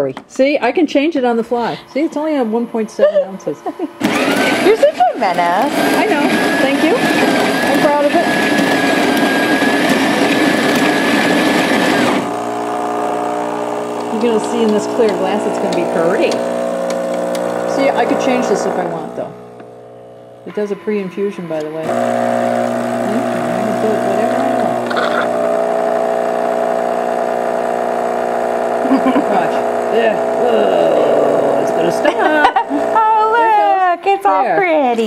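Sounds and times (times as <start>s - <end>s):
espresso machine pump humming: 1.3s - 33.6s
coffee grinder whirring: 1.5s - 33.7s
espresso pouring: 5.6s - 20.5s, 21.8s - 33.0s.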